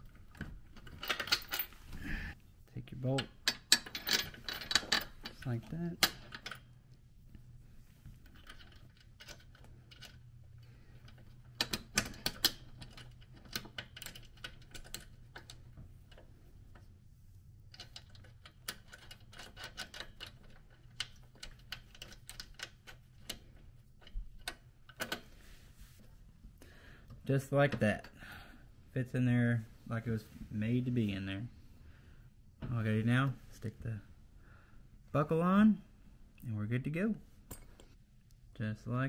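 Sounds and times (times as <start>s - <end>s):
metal hardware clicking: 0.3s - 1.8s, 3.1s - 6.8s, 11.0s - 16.3s.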